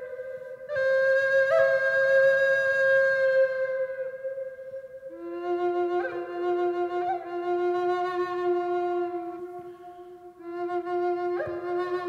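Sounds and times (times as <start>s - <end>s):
wooden flute long note: 0.0s - 12.0s.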